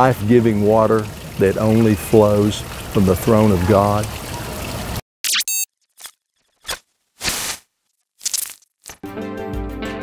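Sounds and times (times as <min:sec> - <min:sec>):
fountain water splashing: 0:00.0 - 0:05.0.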